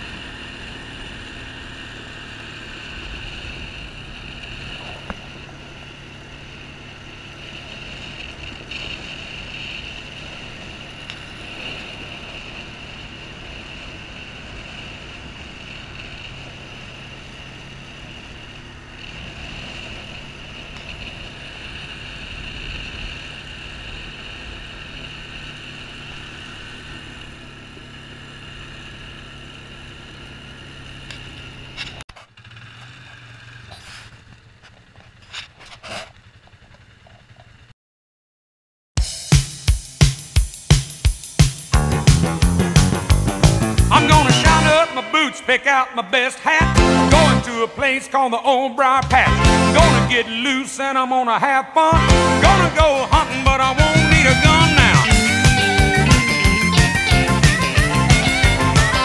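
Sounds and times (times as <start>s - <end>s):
road and wind hiss: 0.0s - 37.7s
small engine running: 0.0s - 37.7s, 39.0s - 48.2s, 48.8s - 50.6s, 51.9s - 59.0s
tyres on gravel road: 0.0s - 37.7s, 40.8s - 59.0s.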